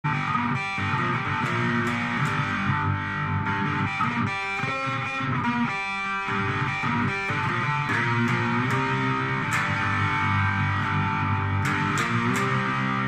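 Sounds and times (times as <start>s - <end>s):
distorted slide guitar: 0.0s - 13.0s.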